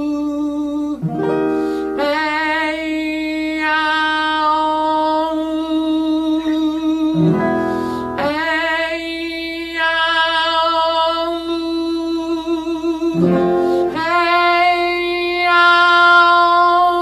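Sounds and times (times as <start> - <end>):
person singing long vibrato notes: 0.0 - 17.0.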